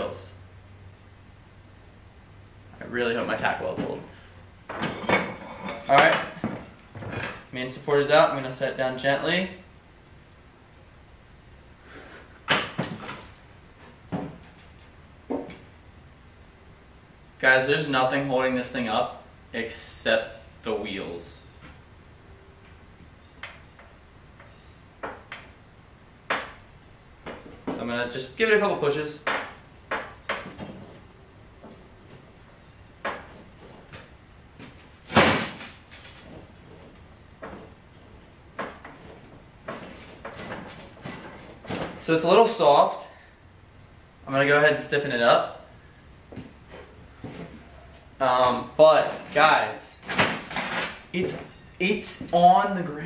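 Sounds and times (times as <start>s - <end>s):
metal frame clunking and rattling: 4.6s - 7.5s, 29.2s - 42.2s, 46.4s - 51.6s.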